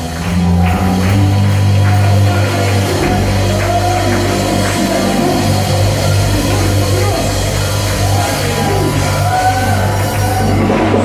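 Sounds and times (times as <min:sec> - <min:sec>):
live worship band music: 0:00.0 - 0:11.0.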